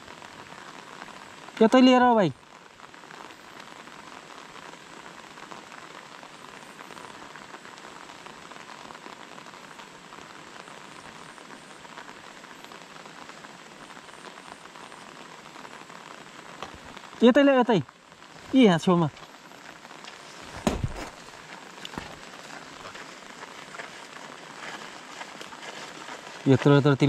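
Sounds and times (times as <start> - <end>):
rain falling on lake: 0.0 - 27.0.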